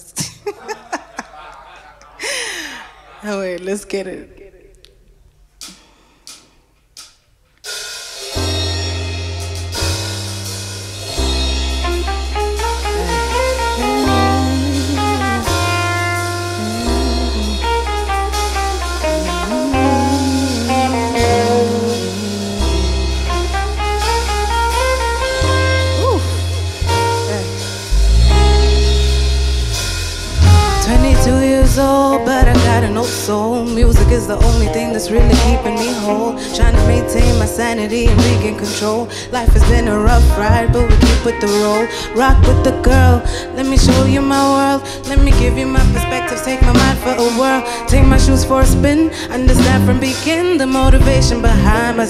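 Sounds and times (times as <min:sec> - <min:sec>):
live band playing: 0:07.7 - 0:52.0
electric bass low notes: 0:08.6 - 0:35.8, 0:36.6 - 0:38.7, 0:39.4 - 0:41.4, 0:42.3 - 0:44.4, 0:45.2 - 0:47.1, 0:47.9 - 0:52.0.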